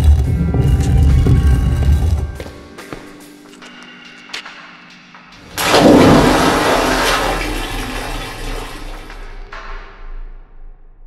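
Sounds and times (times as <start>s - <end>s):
rushing gurgling water: 5.6s - 9.5s.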